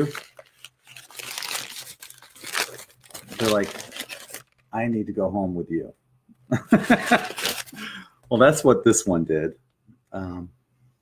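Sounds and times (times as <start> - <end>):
packaging crinkling: 0.0 - 4.7, 7.1 - 7.8.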